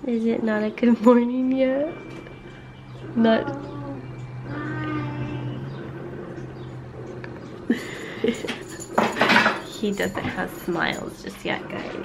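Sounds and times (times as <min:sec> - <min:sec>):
low room hum: 0:00.0 - 0:12.0
woman laughing: 0:07.7 - 0:08.8.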